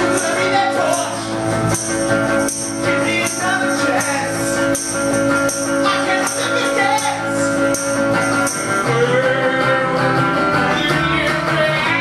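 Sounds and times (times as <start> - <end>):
percussive beat: 0.0 - 9.0
electric guitar: 0.0 - 12.0
live rock band playing: 0.0 - 12.0.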